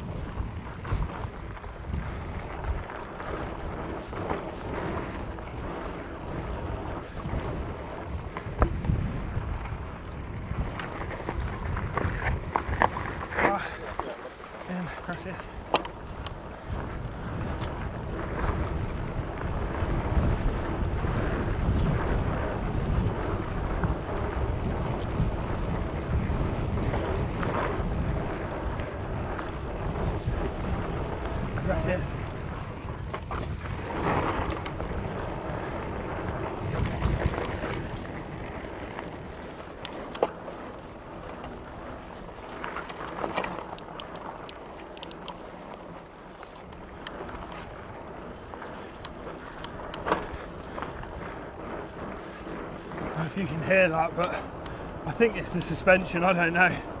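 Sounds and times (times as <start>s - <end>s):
bike knocks and rattles: 0.0s - 56.2s
tyres rolling on dirt: 0.0s - 57.0s
wind buffeting microphone: 0.0s - 57.0s.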